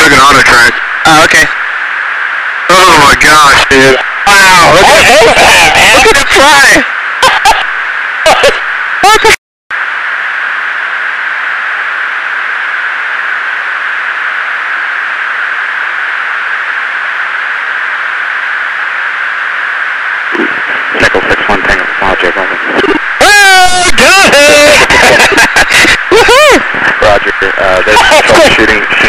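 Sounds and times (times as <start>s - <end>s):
aircrew voices over intercom: 0.0s - 1.5s, 2.7s - 9.4s, 20.3s - 24.9s, 26.4s - 29.0s
intercom hiss: 0.0s - 29.0s.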